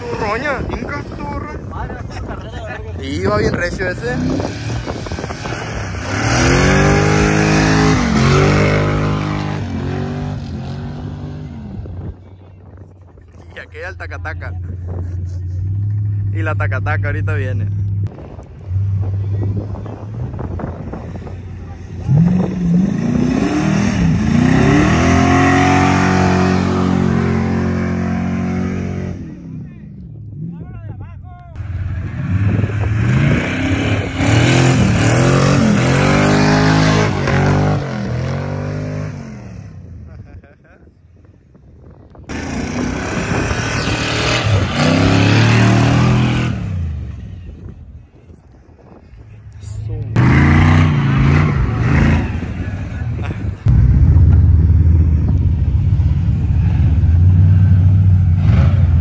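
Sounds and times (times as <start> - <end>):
truck engine revving hard: 4.0 - 11.8, 22.0 - 29.5, 31.9 - 39.7, 42.3 - 47.1, 50.2 - 55.3, 56.3 - 59.0.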